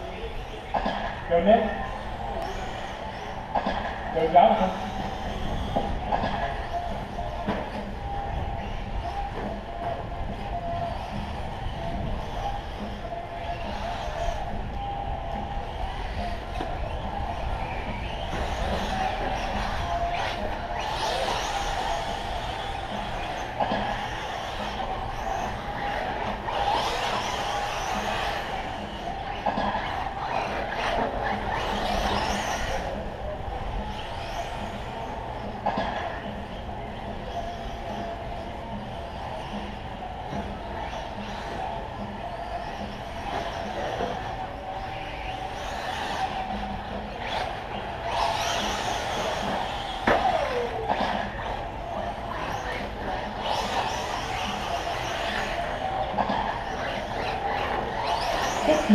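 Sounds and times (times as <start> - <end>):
radio-controlled truck motor whine: 0.0 - 58.9.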